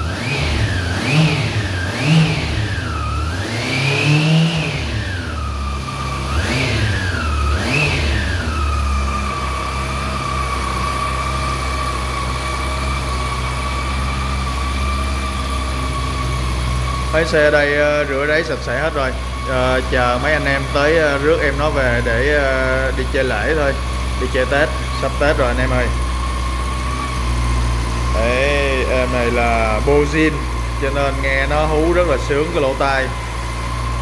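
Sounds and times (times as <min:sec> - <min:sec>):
motorcycle engine idling: 0:00.0 - 0:34.0
motorcycle engine throttle blips: 0:00.0 - 0:34.0.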